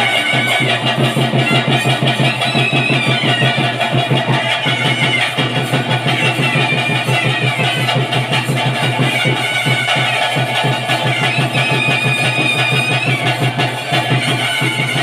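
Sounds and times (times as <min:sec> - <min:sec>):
fast steady drumming: 0:00.0 - 0:15.0
wavering high reed melody: 0:00.0 - 0:15.0.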